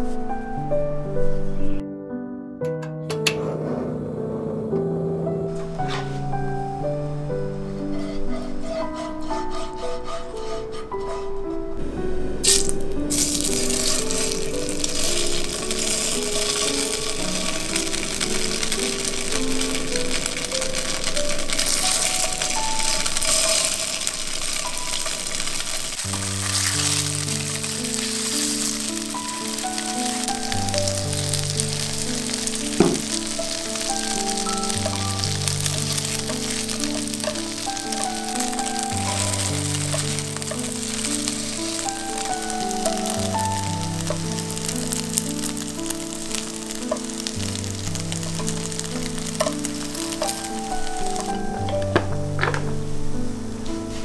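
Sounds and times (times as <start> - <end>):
background music: 0.0 - 54.0
tofu sizzling in a pan: 12.4 - 51.8.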